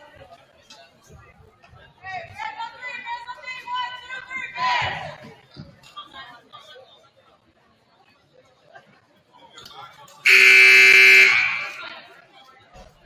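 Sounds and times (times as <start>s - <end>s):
scoreboard buzzer with echo: 10.3s - 11.8s.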